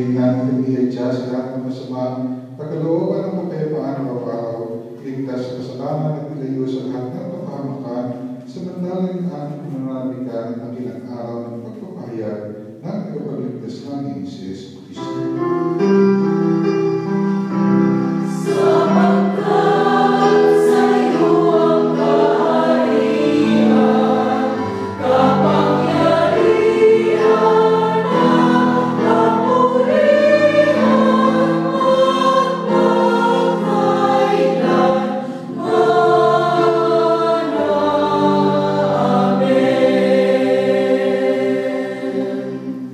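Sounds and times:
women's choir singing a hymn: 18.0 - 42.9.

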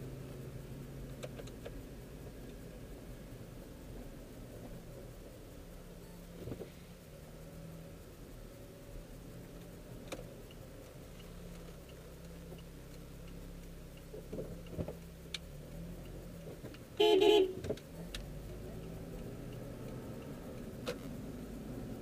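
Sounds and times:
car engine and road noise: 0.0 - 22.0
car horn honk: 17.0 - 17.6.

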